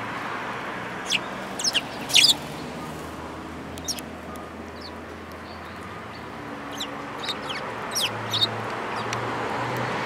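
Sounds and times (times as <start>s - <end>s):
sparrows chirping: 1.0s - 9.2s.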